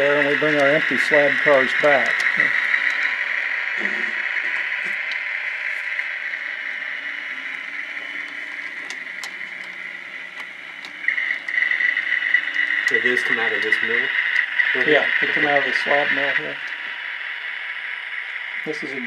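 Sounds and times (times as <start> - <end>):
faint track clicks: 0.0 - 18.8
model train motor whirring: 0.0 - 19.0.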